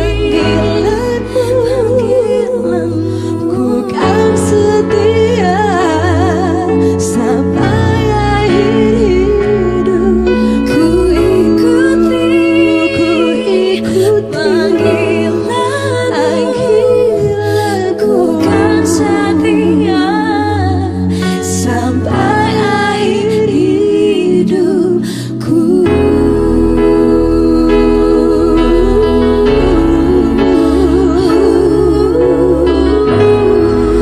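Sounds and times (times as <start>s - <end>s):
bass: 0.0s - 34.0s
electronic keyboard chords: 0.0s - 34.0s
women singing: 0.0s - 34.0s.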